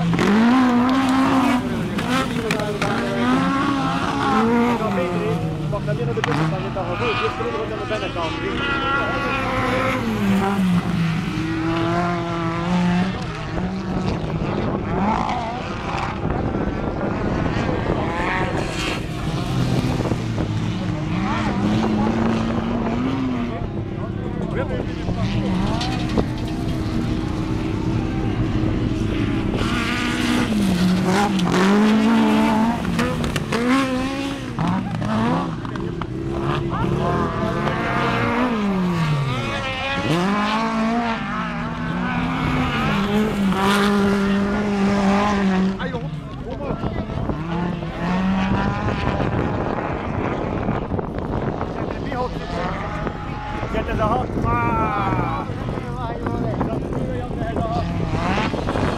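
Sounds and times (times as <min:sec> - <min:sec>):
race car engines revving: 0:00.0 - 0:58.9.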